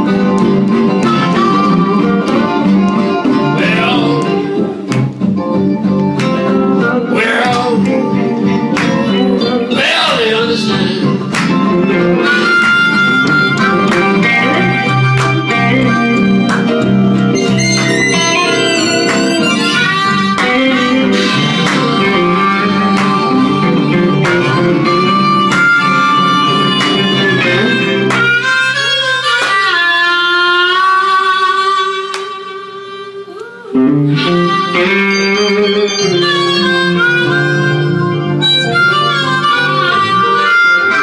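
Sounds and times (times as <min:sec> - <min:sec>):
amplified blues harmonica: 0:00.0 - 0:41.0
electric guitars: 0:00.0 - 0:41.0
live blues band: 0:00.0 - 0:41.0.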